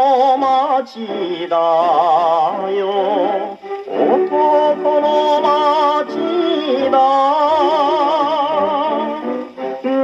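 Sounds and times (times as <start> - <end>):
man singing with vibrato: 0.0 - 10.0
old record accompaniment: 0.0 - 10.0.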